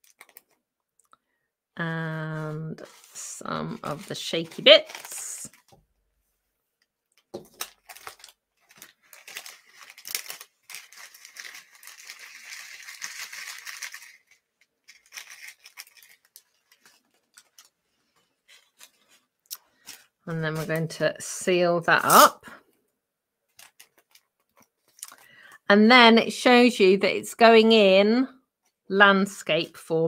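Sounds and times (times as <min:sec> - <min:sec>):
cellophane crinkling and rustling: 0:00.0 - 0:01.1, 0:02.1 - 0:06.2, 0:06.8 - 0:21.4, 0:23.5 - 0:25.3.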